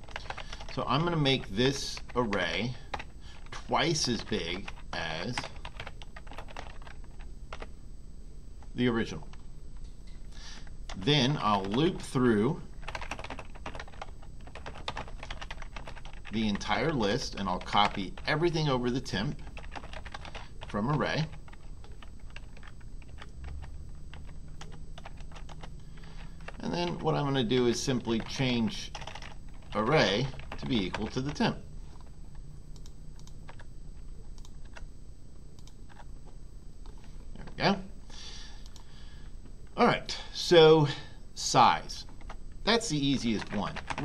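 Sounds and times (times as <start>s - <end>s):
keyboard typing clicks: 0.0s - 0.7s, 28.2s - 31.4s, 32.0s - 33.7s, 34.3s - 34.8s, 35.6s - 36.1s
typing on computer keyboard: 0.0s - 0.7s, 4.7s - 7.7s, 12.8s - 16.7s, 19.4s - 27.0s, 28.1s - 31.4s, 43.4s - 44.0s.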